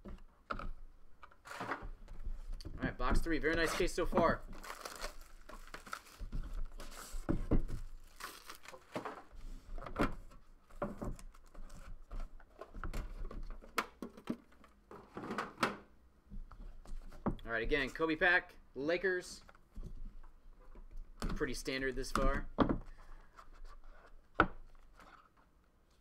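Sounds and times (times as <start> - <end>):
plastic shrink wrap crinkling: 3.7 - 9.2.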